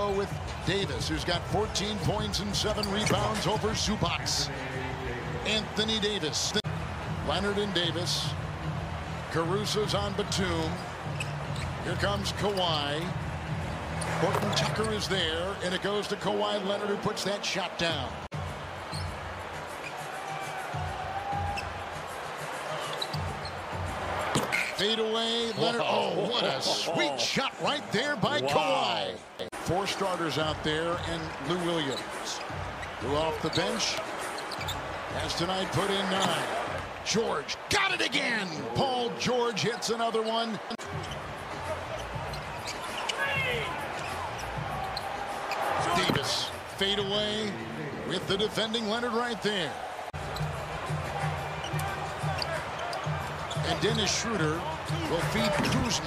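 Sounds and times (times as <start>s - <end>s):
sneaker squeaks: 2.7s - 3.4s, 10.8s - 12.8s, 13.9s - 15.1s, 18.8s - 19.2s, 22.8s - 24.8s, 31.8s - 35.0s, 40.8s - 46.6s, 51.6s - 53.9s, 55.2s - 56.0s.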